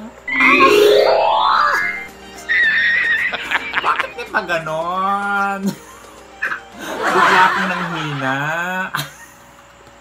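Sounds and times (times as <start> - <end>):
quiet background music: 0.0 - 8.9.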